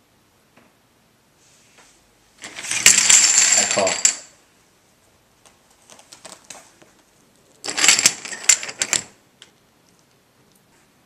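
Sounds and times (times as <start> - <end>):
poker chips clattering: 2.4 - 4.3, 7.7 - 9.2.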